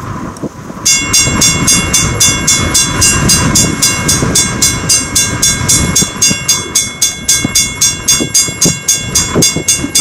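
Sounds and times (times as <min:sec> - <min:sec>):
steam locomotive chuffing: 0:00.9 - 0:10.0.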